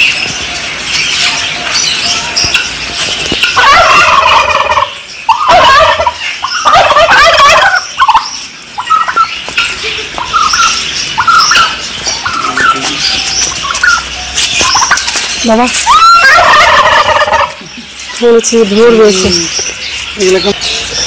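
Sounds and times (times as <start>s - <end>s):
turkeys gobbling: 0.7s - 18.2s.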